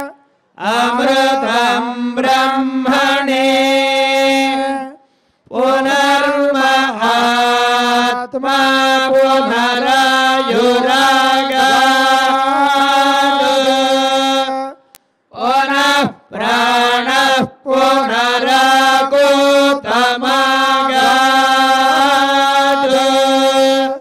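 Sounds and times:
mantras chanted in held tones: 0.0s - 24.0s.

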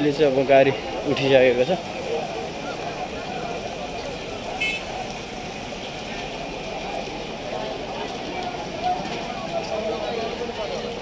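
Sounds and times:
crowd chatter: 0.0s - 11.0s
roadside traffic: 0.0s - 11.0s
high vehicle horn toot: 4.6s - 5.0s.

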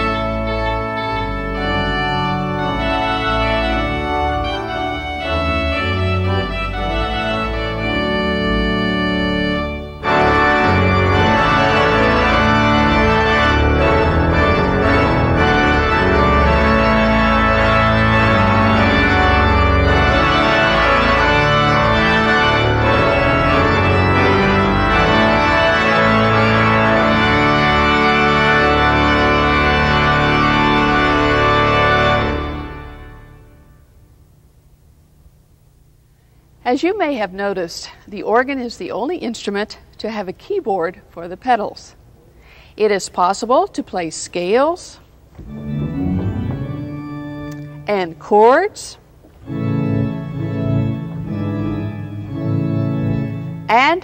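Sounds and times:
pipe organ playing chords: 0.0s - 34.1s, 45.2s - 54.0s.

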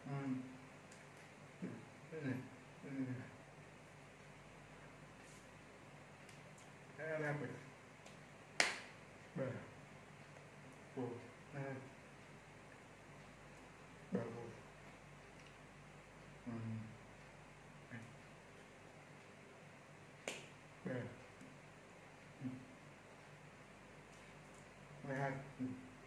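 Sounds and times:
man talking: 0.0s - 0.5s, 1.6s - 3.4s, 7.0s - 7.7s, 9.3s - 9.8s, 11.0s - 11.9s, 14.1s - 14.6s, 16.4s - 17.0s, 20.8s - 21.3s, 25.0s - 25.9s
man's voice syllable: 0.0s - 0.5s, 1.6s - 3.4s, 7.0s - 7.7s, 9.3s - 9.8s, 11.0s - 12.0s, 14.1s - 14.6s, 16.4s - 17.0s, 20.8s - 21.2s, 25.0s - 25.9s
faint room hiss: 0.0s - 26.0s.

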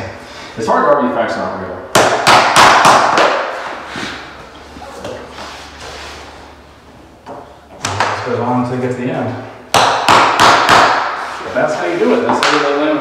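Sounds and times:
rubber mallet knocking plank: 1.9s - 3.4s, 9.7s - 11.2s.

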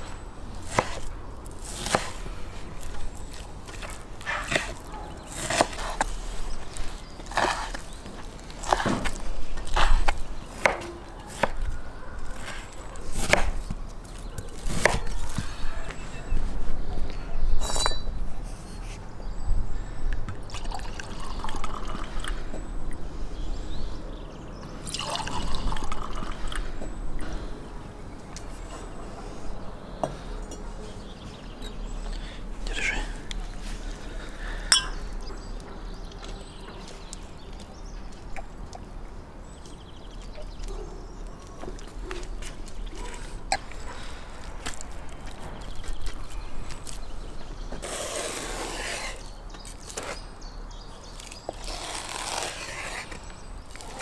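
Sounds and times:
wine glass clinking: 17.6s - 18.1s, 34.7s - 35.0s.

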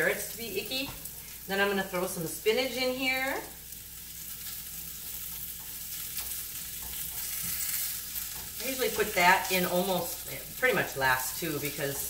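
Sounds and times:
vegetables sizzling in a frying pan: 0.0s - 12.0s
spatula scraping a pan: 5.4s - 10.2s.

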